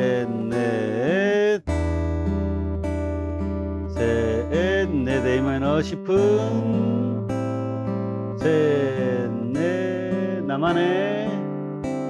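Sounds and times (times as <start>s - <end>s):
man singing held note: 0.0s - 1.6s, 4.0s - 7.2s, 8.4s - 11.4s
fingerpicked acoustic guitar: 0.0s - 12.0s.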